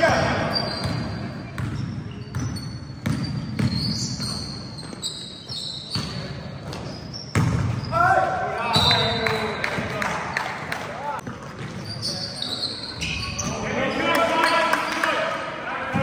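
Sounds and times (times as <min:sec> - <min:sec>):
sneakers squeaking on court: 0:00.0 - 0:10.0, 0:11.2 - 0:15.1
basketball bouncing: 0:00.1 - 0:05.0, 0:06.0 - 0:07.9.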